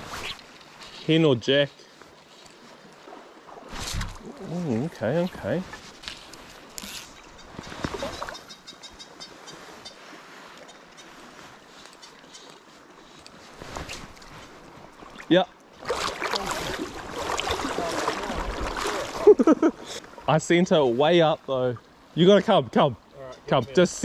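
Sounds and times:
river flowing: 0:00.0 - 0:22.4.

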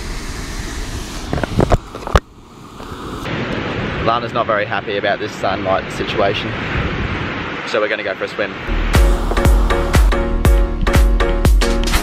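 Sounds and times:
wind and surf on microphone: 0:00.0 - 0:10.2.

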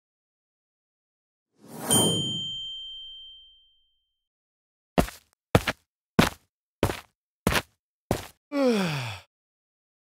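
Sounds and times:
bright bell ding: 0:01.8 - 0:03.9.

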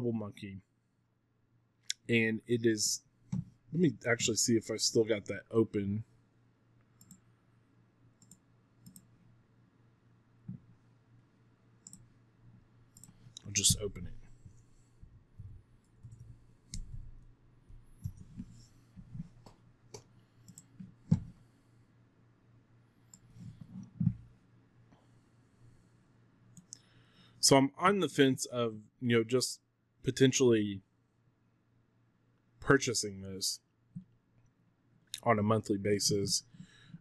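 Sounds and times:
faint low hum: 0:00.0 - 0:37.0
computer mouse clicks: 0:07.0 - 0:07.2, 0:08.2 - 0:09.1, 0:11.8 - 0:12.1, 0:13.0 - 0:13.8, 0:18.0 - 0:21.4
faint computer mouse clicks: 0:07.0 - 0:07.2, 0:08.2 - 0:09.1, 0:11.8 - 0:12.1, 0:19.4 - 0:21.3, 0:23.1 - 0:24.1.

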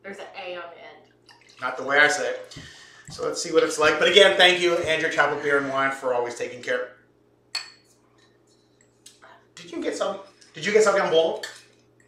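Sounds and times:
glassware clinking: 0:07.5 - 0:07.9.

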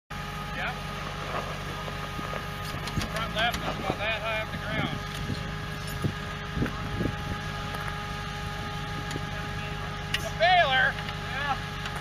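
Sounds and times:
vehicle engine running: 0:00.1 - 0:12.0.

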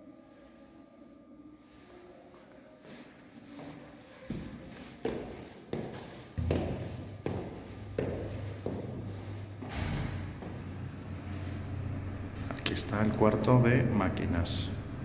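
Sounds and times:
footsteps on stone stairs: 0:04.3 - 0:09.2
steady low hum: 0:06.4 - 0:15.0.

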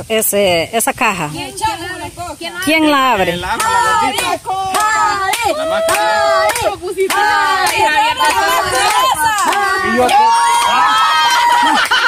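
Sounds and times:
excited voices calling out: 0:01.2 - 0:12.0
hand claps: 0:03.5 - 0:12.0.

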